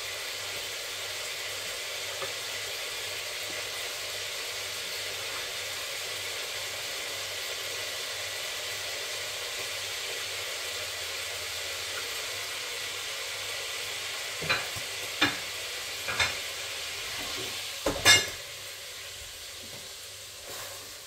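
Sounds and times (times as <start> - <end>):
food sizzling in hot oil: 0.0 - 21.0.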